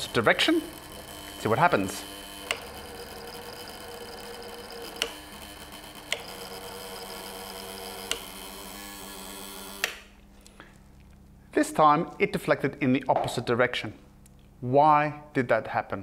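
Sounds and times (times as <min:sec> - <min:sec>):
induction coil hissing: 0:00.0 - 0:02.8
sharp clicks: 0:05.0 - 0:05.2, 0:09.8 - 0:10.1
switch click: 0:09.8 - 0:10.1.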